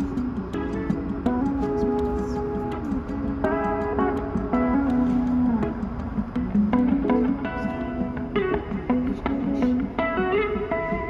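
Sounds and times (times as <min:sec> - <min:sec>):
plucked guitar instrumental: 0:00.0 - 0:11.0.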